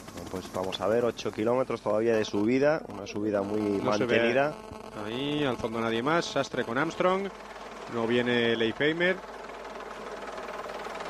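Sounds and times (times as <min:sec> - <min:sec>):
vehicle engine noise: 0:00.0 - 0:11.0
commentator speaking: 0:00.3 - 0:07.3.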